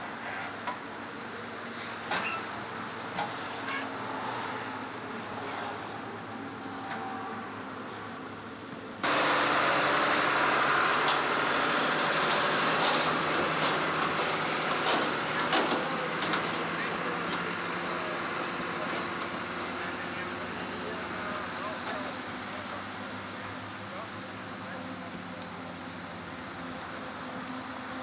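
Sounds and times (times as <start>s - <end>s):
tractor engine running: 8.9s - 28.0s
trailer rattling and knocking: 9.0s - 23.0s.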